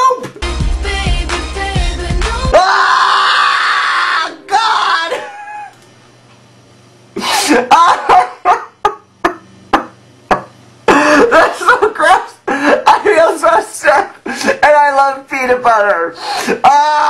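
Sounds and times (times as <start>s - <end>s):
man screaming and yelling: 2.5s - 5.7s, 16.5s - 17.0s.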